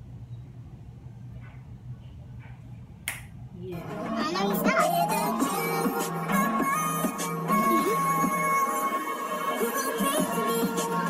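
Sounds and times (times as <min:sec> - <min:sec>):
low room hum: 0:00.0 - 0:08.6
music: 0:03.7 - 0:11.0.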